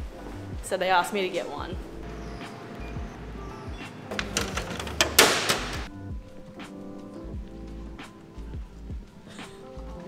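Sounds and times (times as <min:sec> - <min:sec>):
bottle thudding into vending machine: 0:04.1 - 0:05.9
background music with a beat: 0:05.6 - 0:10.0.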